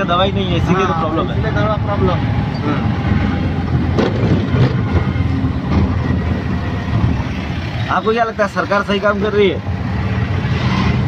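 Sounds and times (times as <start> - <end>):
road noise: 0.0 - 11.0
small engine rumbling: 0.0 - 11.0.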